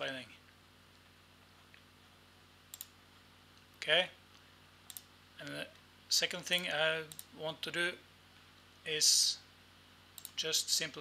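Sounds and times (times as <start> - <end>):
faint steady hum: 0.0 - 11.0
computer mouse clicks: 2.7 - 3.0, 4.9 - 5.1, 6.5 - 7.3, 10.2 - 10.4.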